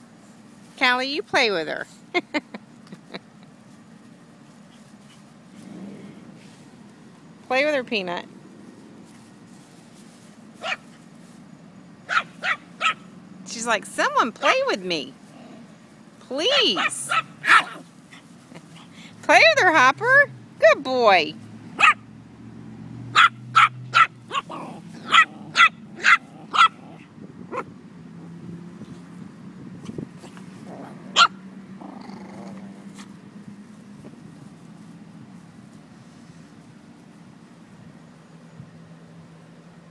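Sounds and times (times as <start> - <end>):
small dog barking: 10.6 - 11.0, 12.1 - 13.1, 16.5 - 17.9, 21.8 - 22.0, 23.1 - 27.7, 31.0 - 31.4.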